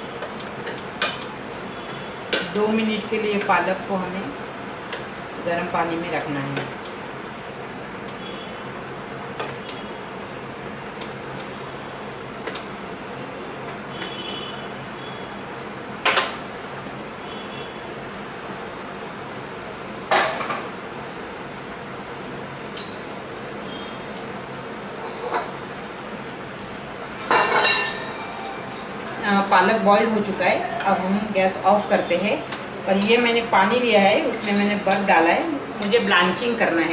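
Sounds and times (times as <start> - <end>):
water boiling in a frying pan: 0.0 - 28.0
kitchenware knocks and clinks: 27.2 - 28.2.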